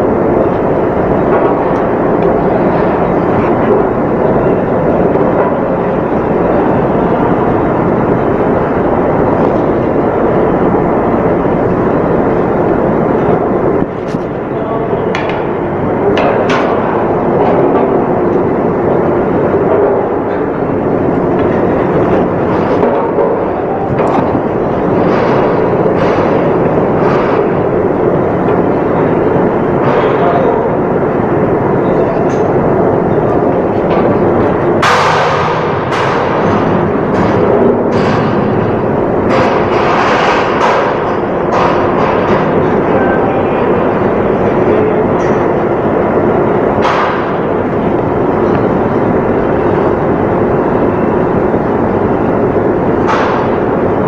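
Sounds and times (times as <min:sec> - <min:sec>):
faint constant hum: 0:00.0 - 0:54.0
loud steady machinery noise: 0:00.0 - 0:54.0
sharp knocks: 0:46.8 - 0:47.5, 0:53.0 - 0:53.7.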